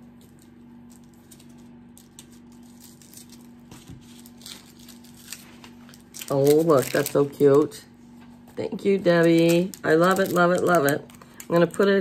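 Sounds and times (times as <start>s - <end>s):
steady low hum: 0.0s - 12.0s
hands rustling gift items: 0.2s - 12.0s.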